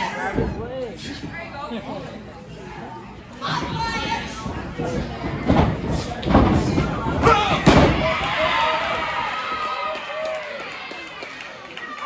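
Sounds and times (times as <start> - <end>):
crowd shouting and cheering: 7.1 - 12.0.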